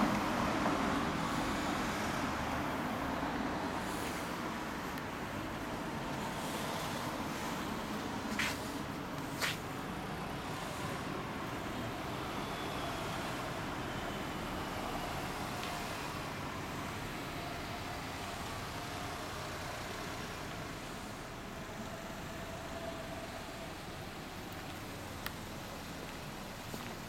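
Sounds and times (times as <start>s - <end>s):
cars passing on street: 0.0s - 27.0s.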